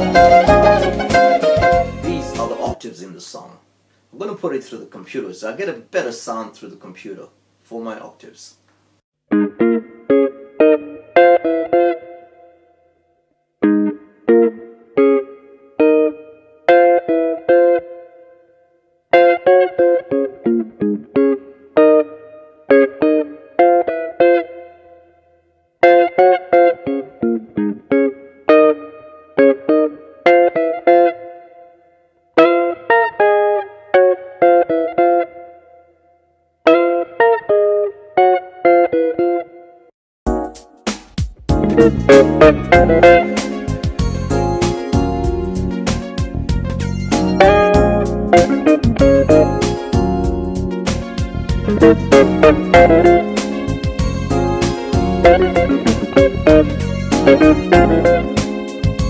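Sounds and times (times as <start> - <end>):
electric guitar playing jazz octaves: 0.0 - 2.8, 9.3 - 12.7, 13.6 - 18.4, 19.1 - 31.8, 32.4 - 35.9, 36.6 - 40.7, 41.5 - 59.0.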